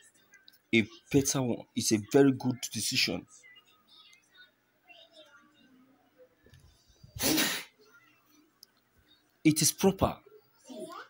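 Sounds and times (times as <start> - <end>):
person sneezing: 7.2 - 7.8.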